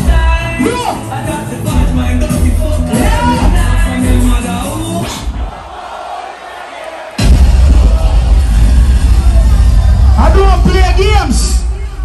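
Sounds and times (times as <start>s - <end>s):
dance music with heavy bass: 0.0s - 5.7s, 7.2s - 12.0s
crowd noise: 0.0s - 12.0s.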